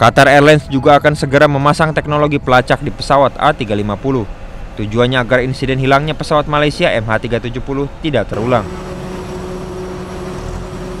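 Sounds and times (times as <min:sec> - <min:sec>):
jet engines droning: 0:00.0 - 0:11.0.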